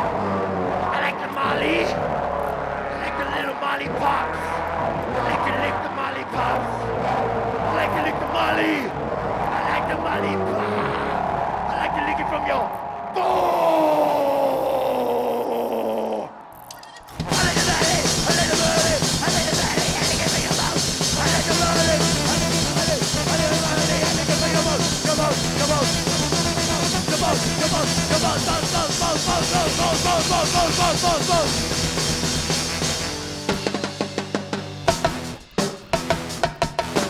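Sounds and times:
voice and horn lines: 0.2s - 2.1s, 2.9s - 8.9s, 9.5s - 13.5s, 17.2s - 31.6s
loud rock band: 17.1s - 37.0s.

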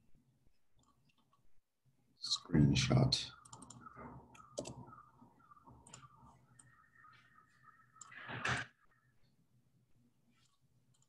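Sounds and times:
computer mouse clicks: 3.4s - 6.9s, 7.9s - 8.6s, 10.4s - 11.0s.

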